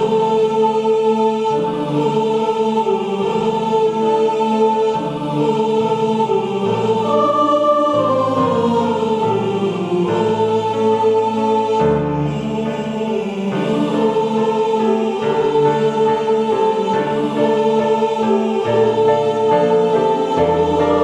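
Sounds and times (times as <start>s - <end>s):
choir singing in unison: 0.0s - 21.0s
piano accompaniment: 0.0s - 21.0s.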